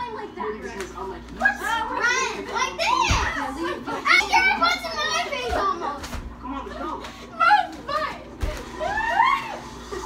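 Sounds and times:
excited children's voices: 0:01.4 - 0:10.0.

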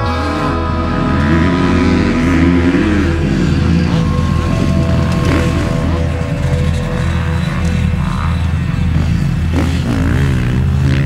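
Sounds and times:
motocross engines revving: 0:00.0 - 0:11.0.

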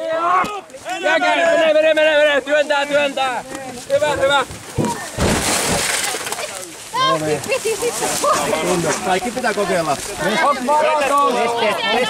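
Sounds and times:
people calling out: 0:07.0 - 0:12.0.

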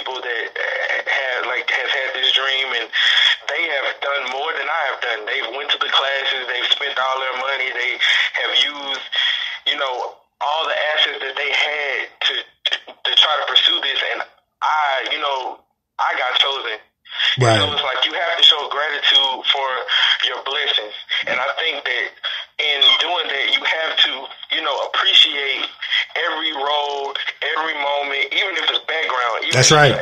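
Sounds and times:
man talking: 0:17.4 - 0:17.9, 0:29.4 - 0:30.0.

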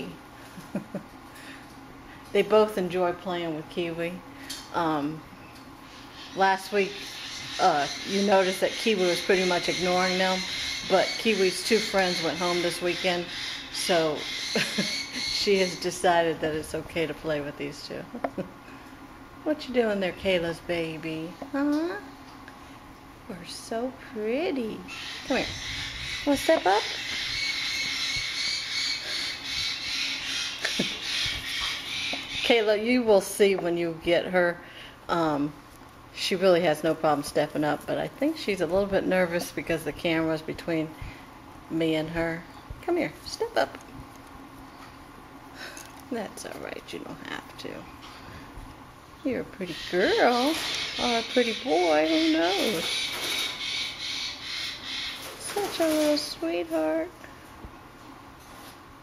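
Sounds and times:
parrots chattering: 0:05.9 - 0:16.1, 0:24.9 - 0:32.7, 0:49.6 - 0:56.4.

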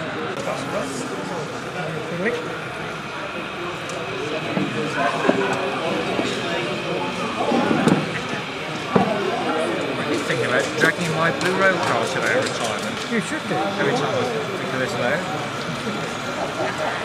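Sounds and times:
chatter of many voices: 0:00.0 - 0:17.0.

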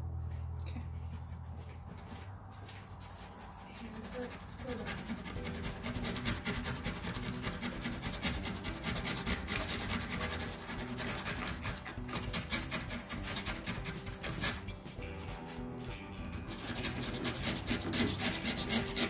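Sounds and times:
scrapers rasping on countertop: 0:03.0 - 0:15.7, 0:16.3 - 0:19.0.

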